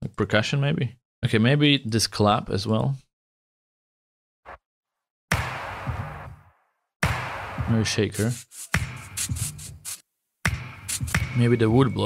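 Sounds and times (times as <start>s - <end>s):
drum beat: 5.3s - 6.4s, 7.0s - 11.5s
percussion hit with hissy tail: 7.0s - 7.8s.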